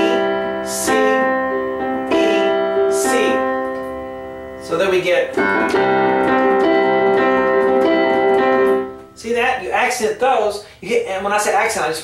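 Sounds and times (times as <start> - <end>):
digital piano notes and chords: 0.0 - 10.6.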